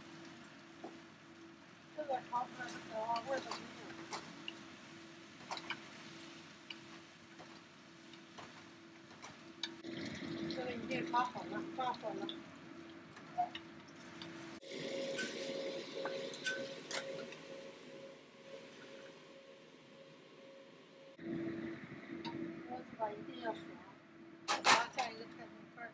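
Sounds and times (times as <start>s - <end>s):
steady low hum: 15.9s - 24.5s.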